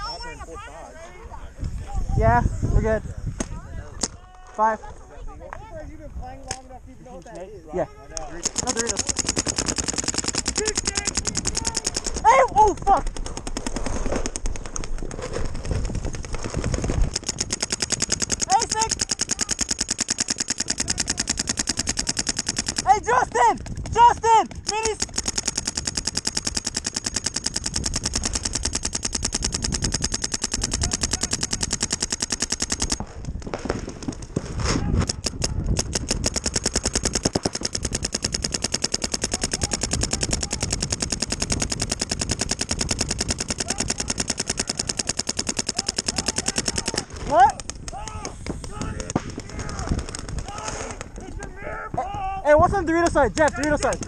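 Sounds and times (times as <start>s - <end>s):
paintball markers firing rapidly: 8.2s - 51.4s, 52.7s - 54.0s
people shouting: 10.6s - 13.0s, 22.8s - 25.0s, 45.7s - 52.5s.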